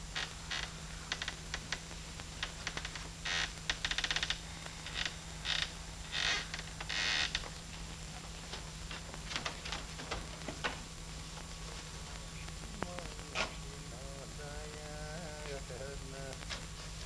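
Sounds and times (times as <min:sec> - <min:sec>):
low soundtrack hum: 0:10.9 - 0:17.0.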